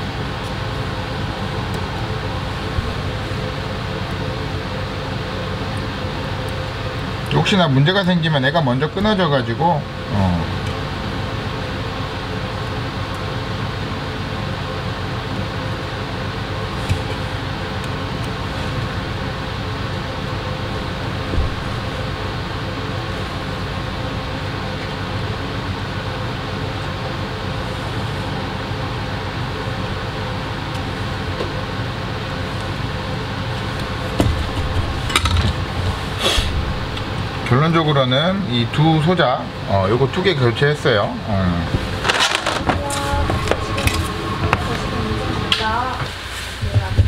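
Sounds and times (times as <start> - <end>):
electric fan humming: 0.0 - 47.0
handling clatter: 41.9 - 44.0.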